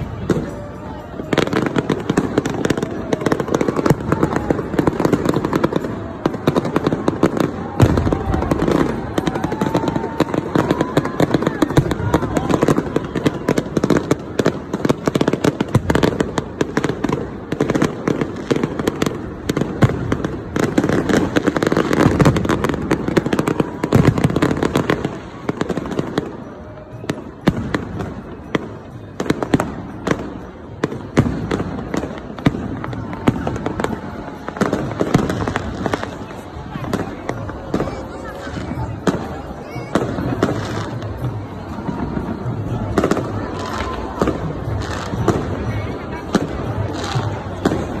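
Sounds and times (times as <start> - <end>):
crowd voices: 0.0 - 48.0
fireworks bangs and crackles: 0.0 - 48.0.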